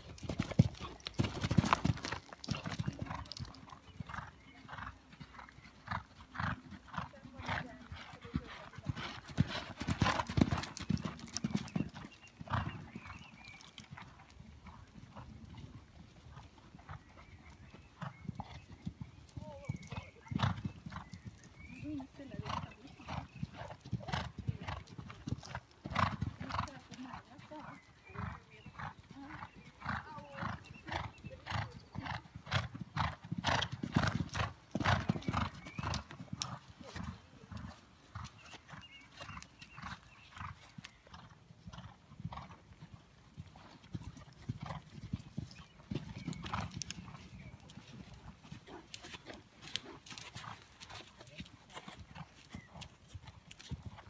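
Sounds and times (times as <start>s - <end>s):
hoofbeats on sand: 5.9s - 13.2s.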